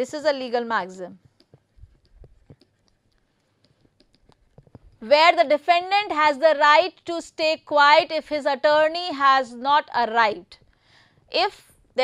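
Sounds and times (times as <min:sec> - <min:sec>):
stylus tapping on tablet: 0:01.2 - 0:05.0.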